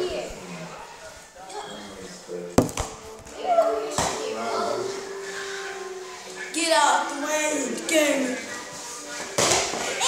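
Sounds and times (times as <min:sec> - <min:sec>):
children's voices: 0:06.4 - 0:08.5.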